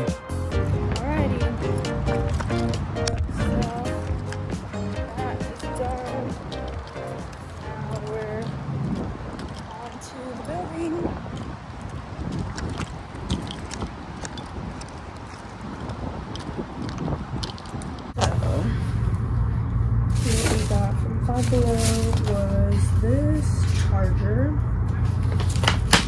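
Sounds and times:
handling noises while walking: 0.0s - 19.3s, 20.0s - 26.0s
traffic: 0.0s - 26.0s.

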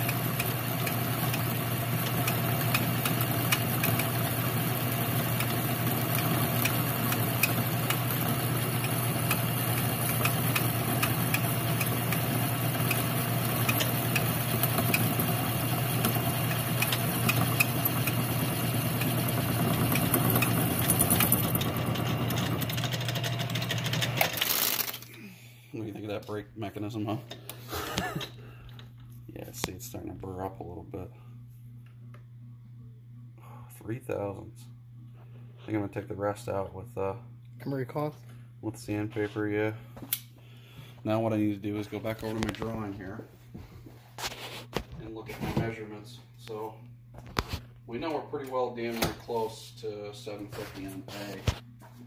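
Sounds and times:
metal lathe cutting: 0.0s - 24.2s.

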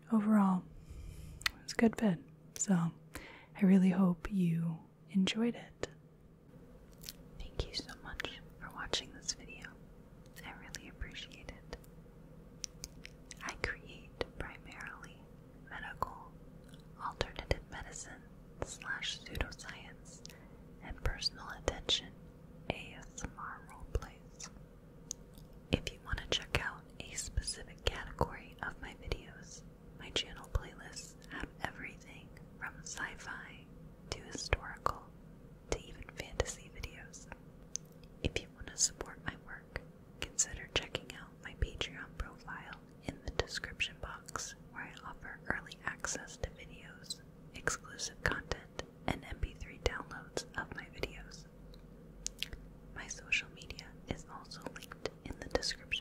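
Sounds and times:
person whispering: 3.6s - 6.0s, 7.4s - 9.8s, 10.4s - 11.8s, 13.4s - 16.3s, 17.0s - 24.5s, 25.8s - 35.1s, 35.7s - 37.4s, 38.3s - 51.5s, 52.3s - 56.0s.

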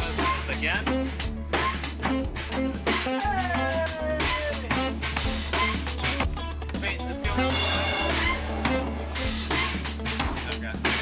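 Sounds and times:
indie pop band music: 0.0s - 11.0s.

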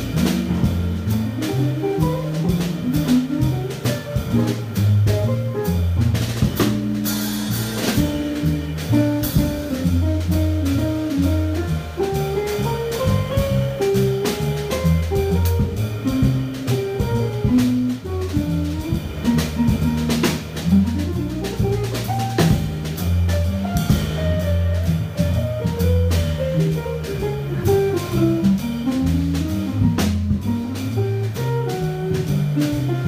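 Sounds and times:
drum kit with cymbals: 0.0s - 33.0s
electric bass line: 0.0s - 33.0s.

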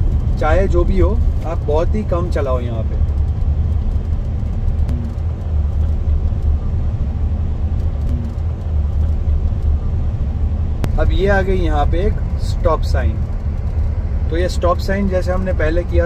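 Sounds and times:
car engine rumble: 0.0s - 16.0s.

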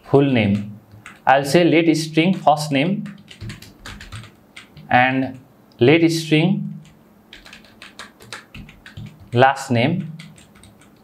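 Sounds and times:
typing on computer keyboard: 0.5s - 1.5s, 2.2s - 5.4s, 6.8s - 11.0s.

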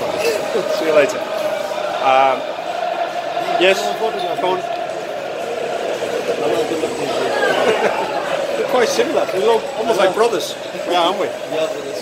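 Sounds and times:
chatter of many people: 0.0s - 12.0s.

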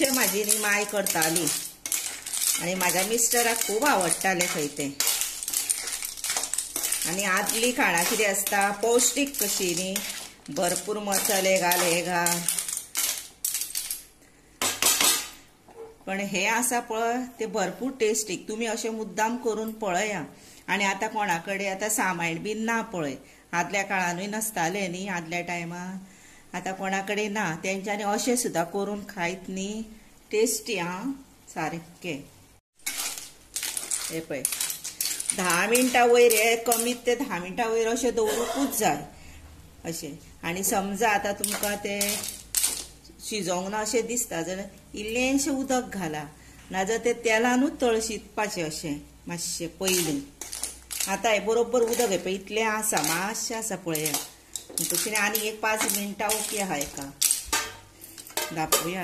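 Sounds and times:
metal spoon scraping pan: 0.0s - 14.0s, 32.8s - 37.4s, 40.6s - 43.0s, 49.7s - 59.0s
clam shells clattering: 0.0s - 14.1s, 32.8s - 37.0s, 41.4s - 43.0s, 49.9s - 51.2s, 51.8s - 52.3s, 54.0s - 59.0s.

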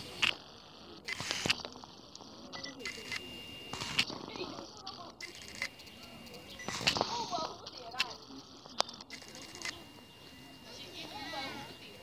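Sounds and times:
people talking faintly: 0.0s - 12.0s
sharp clicks: 1.0s - 4.2s, 4.9s - 10.0s.

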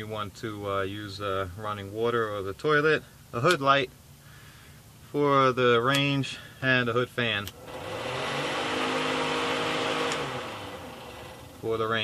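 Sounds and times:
range hood fan running: 7.1s - 12.0s.

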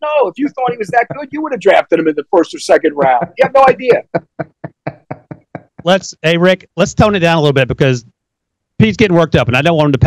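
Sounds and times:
man laughing in bursts: 0.3s - 4.8s.

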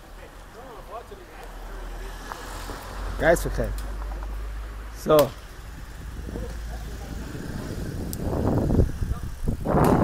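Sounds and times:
moving vehicle rumble and wind: 0.0s - 10.0s.

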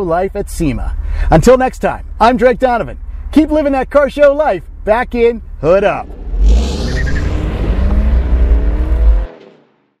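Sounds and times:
car engine accelerating: 5.5s - 10.0s.

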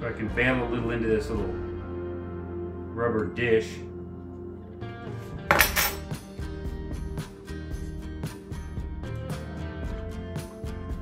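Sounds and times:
background music: 0.0s - 11.0s
metal spoon clinking on glass jar: 5.5s - 6.1s.

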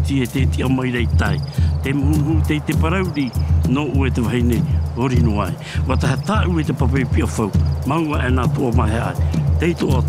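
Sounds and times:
low bass line: 0.0s - 10.0s
person singing over music: 0.0s - 10.0s.

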